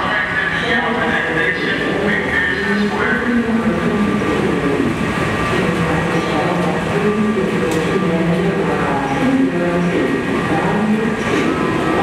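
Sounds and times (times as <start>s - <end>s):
subway train rumbling: 0.0s - 12.0s.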